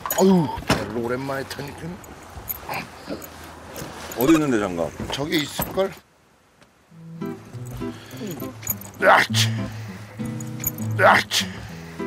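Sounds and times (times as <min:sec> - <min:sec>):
faint steady background noise: 0:00.0 - 0:12.0
person grunting: 0:08.1 - 0:09.8, 0:10.9 - 0:11.7.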